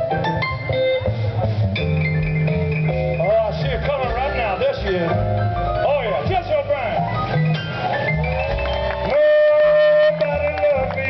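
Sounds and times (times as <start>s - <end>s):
blues band playing: 0.0s - 11.0s
plucked double bass: 0.0s - 11.0s.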